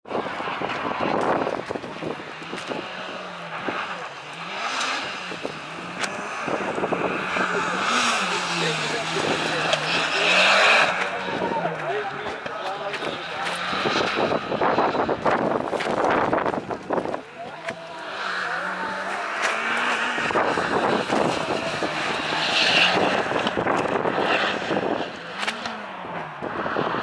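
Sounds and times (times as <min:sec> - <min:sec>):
car engine revving: 0:00.0 - 0:27.0.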